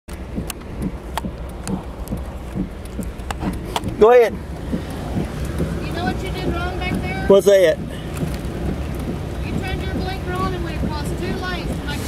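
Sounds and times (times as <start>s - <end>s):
soft regular ticks: 0.1s - 12.0s
vehicle engine idling: 0.1s - 12.0s.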